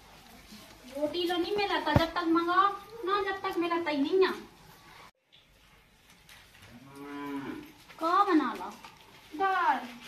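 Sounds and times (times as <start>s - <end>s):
cow mooing: 6.7s - 7.7s.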